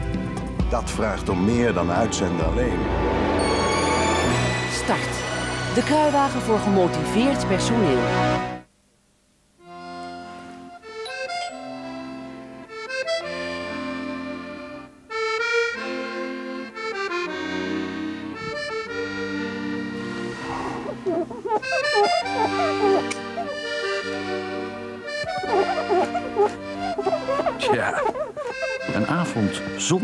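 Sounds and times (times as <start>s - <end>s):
accordion melody: 1.2s - 8.7s, 9.6s - 30.0s.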